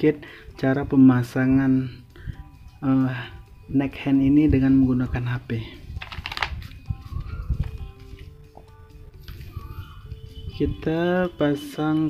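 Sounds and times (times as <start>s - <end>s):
quiet background music: 0.0s - 12.0s
plastic packaging crinkle: 6.0s - 7.8s.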